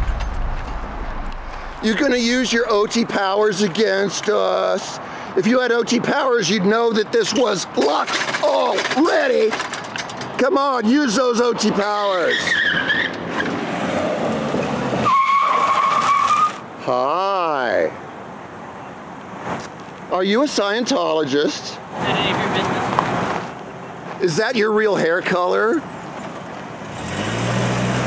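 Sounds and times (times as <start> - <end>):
brakes squealing: 0.0 - 17.0
pickup truck rolling on road: 0.0 - 28.0.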